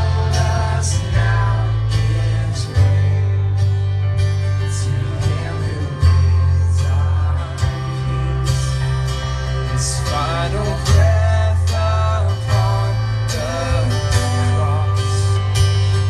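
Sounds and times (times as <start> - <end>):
guitar: 0.0 - 16.0
heavy sustained bass line: 0.0 - 16.0
person singing: 9.6 - 16.0.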